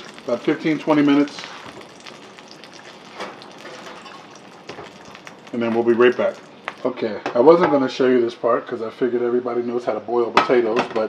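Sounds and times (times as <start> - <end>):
hot oil crackling in a pan: 0.0 - 7.1.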